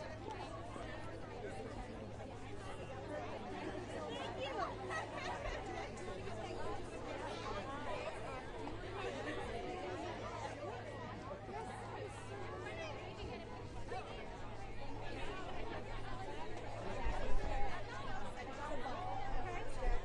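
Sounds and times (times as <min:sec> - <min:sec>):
crowd chatter: 0:00.0 - 0:20.0.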